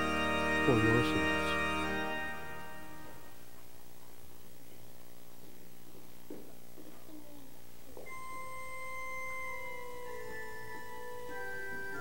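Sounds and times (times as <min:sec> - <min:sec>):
organ note held: 0:00.0 - 0:03.4, 0:08.1 - 0:12.0.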